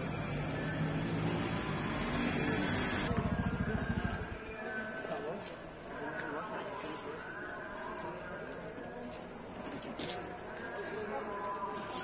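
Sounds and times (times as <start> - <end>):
motorbike engine running: 3.0 - 4.4.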